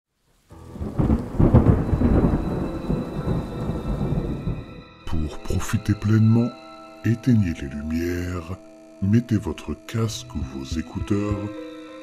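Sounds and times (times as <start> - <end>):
steady rain: 0.1 - 4.8
thunder rumbling: 0.6 - 4.9.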